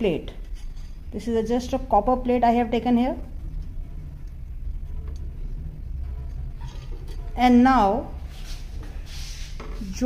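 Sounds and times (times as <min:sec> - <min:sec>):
low background rumble: 0:00.0 - 0:09.1.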